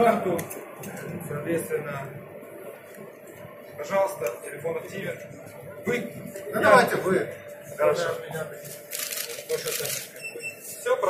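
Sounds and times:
card reader beep: 9.9 - 10.8.

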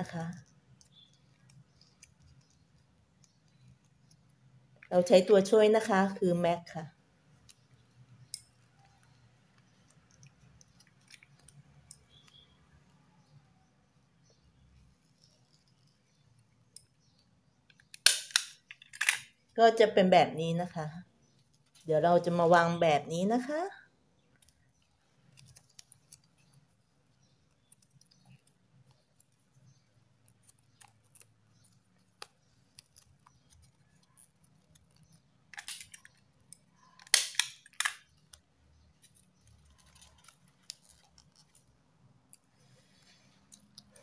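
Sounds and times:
stapler crunching snap: 18.0 - 19.2, 37.0 - 38.0.

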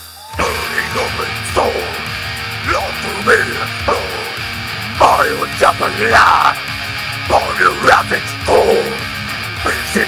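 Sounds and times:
heavy metal band playing: 0.0 - 10.0
harsh vocal shouts: 0.2 - 10.0.

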